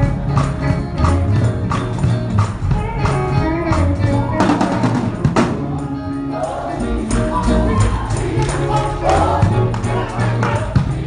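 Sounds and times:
bass guitar: 0.0s - 11.0s
drum kit: 0.0s - 11.0s
gospel singing voices: 5.8s - 11.0s.

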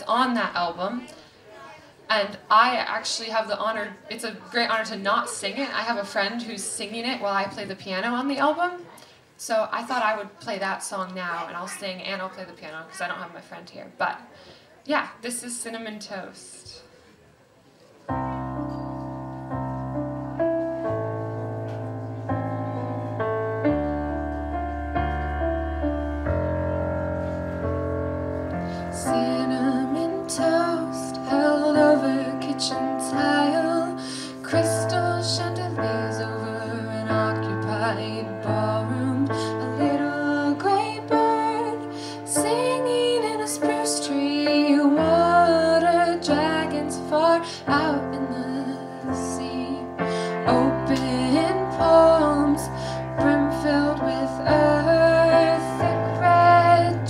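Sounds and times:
piano chords: 18.1s - 57.0s
young woman singing: 28.9s - 57.0s.

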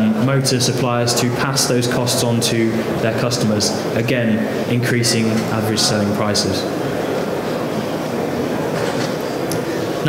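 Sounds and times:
busy exhibition hall noise: 0.0s - 10.0s.

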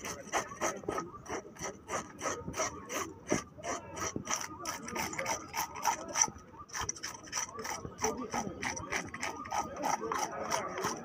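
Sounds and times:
wooden block scraping fish scales: 0.0s - 11.0s.

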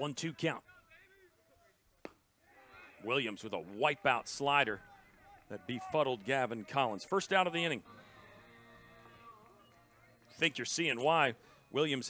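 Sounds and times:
faint ballpark ambience: 0.0s - 12.0s.

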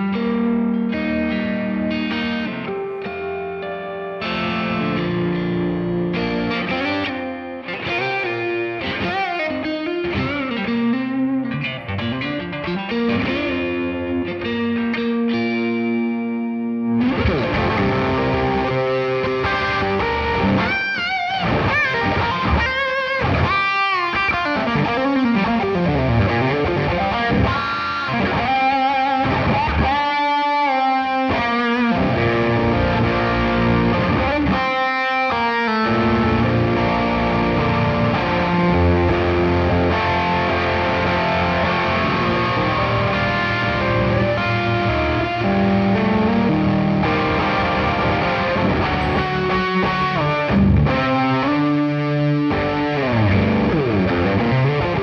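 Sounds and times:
distorted electric guitar riffs: 0.0s - 55.0s.

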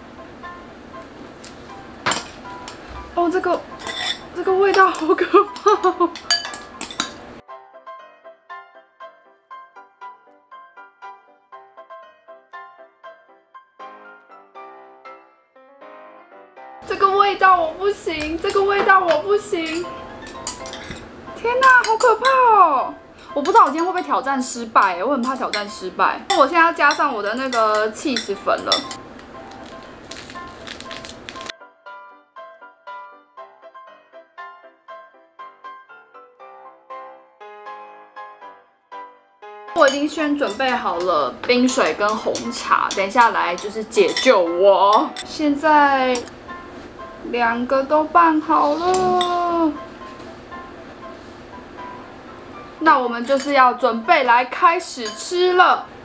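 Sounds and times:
soft background music: 0.0s - 56.0s
chopsticks clinking ceramic bowl: 3.8s - 7.2s, 18.4s - 21.0s, 25.2s - 29.0s, 41.8s - 45.4s
foil sachet crinkling: 29.2s - 31.5s.

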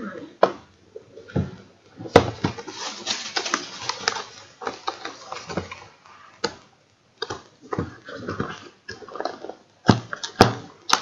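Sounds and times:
cardboard scraping and rustling: 2.1s - 6.0s.

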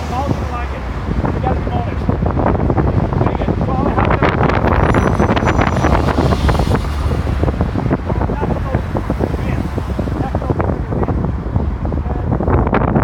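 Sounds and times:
bus driving past: 0.0s - 10.7s
cars driving past: 0.0s - 13.0s
wind buffeting microphone: 0.0s - 13.0s.

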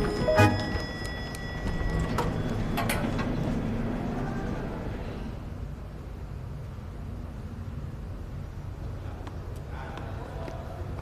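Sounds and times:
elevator doors closing: 0.0s - 5.3s
elevator car humming: 0.0s - 9.1s.

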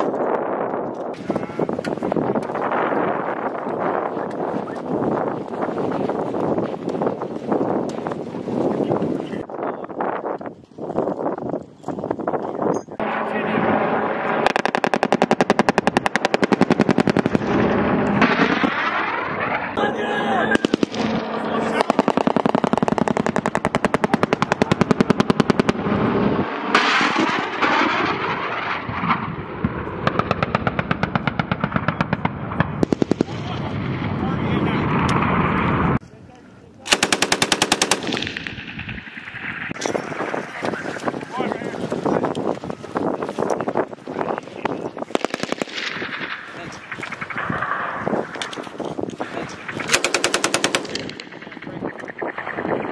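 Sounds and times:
helicopter passing overhead: 0.0s - 9.3s, 12.5s - 36.0s, 36.9s - 52.9s
machine-gun fire: 13.0s - 19.8s, 20.5s - 34.2s, 36.9s - 40.2s, 45.0s - 48.7s, 49.6s - 52.9s.

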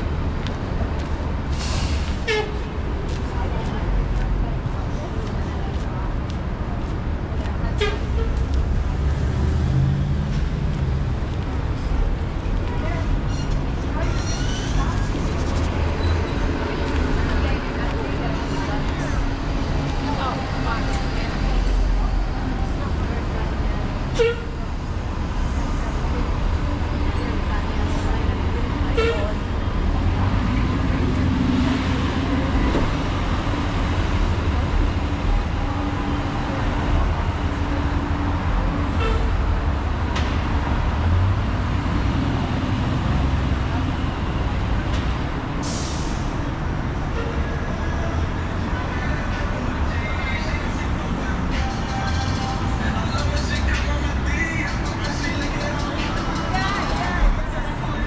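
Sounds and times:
bus: 0.0s - 58.0s
traffic rumble: 0.0s - 58.0s
passersby talking: 2.5s - 58.0s.

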